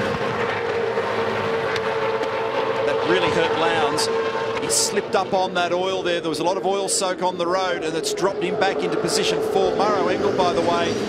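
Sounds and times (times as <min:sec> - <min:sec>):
racing cars engines roaring: 0:00.0 - 0:11.0.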